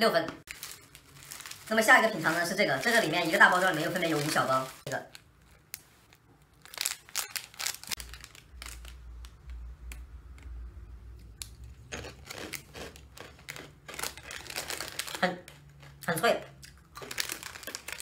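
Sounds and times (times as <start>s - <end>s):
plastic bag crinkling: 0.5s - 9.5s, 11.9s - 16.3s, 16.9s - 18.0s.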